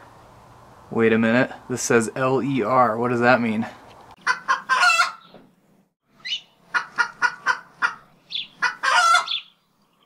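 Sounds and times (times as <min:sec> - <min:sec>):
fowl clucking: 0:04.2 - 0:05.3, 0:06.7 - 0:09.4
high rising squawk: 0:06.2 - 0:09.5.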